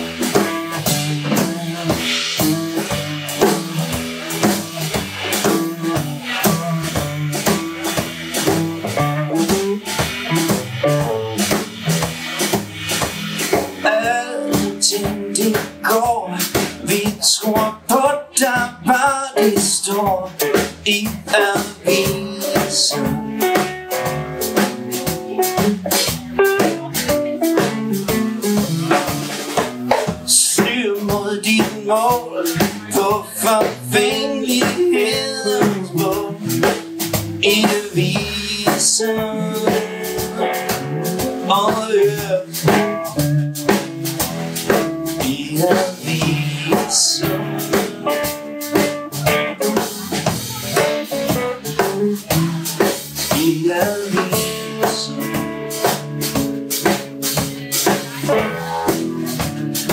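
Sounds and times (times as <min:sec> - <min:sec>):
electric guitar lines: 0:00.0 - 0:17.0, 0:20.4 - 0:59.9
person singing: 0:00.0 - 0:43.9, 0:44.6 - 0:59.9
bass guitar: 0:00.0 - 0:59.9
drum kit steady beat: 0:00.0 - 0:59.9.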